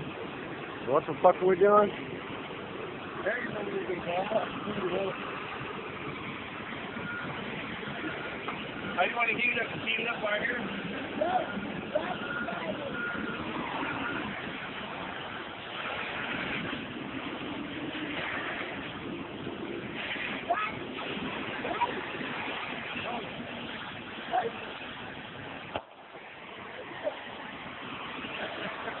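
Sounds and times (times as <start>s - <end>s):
welding torch flame hissing: 13.4s - 29.0s
short sharp pops: 25.7s - 26.0s.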